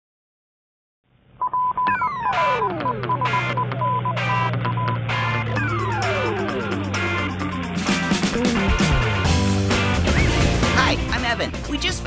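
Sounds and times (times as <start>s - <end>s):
high pulsing beep: 1.4s - 7.8s
low hum: 1.9s - 10.7s
falling whistle: 5.5s - 7.4s, 10.0s - 10.5s.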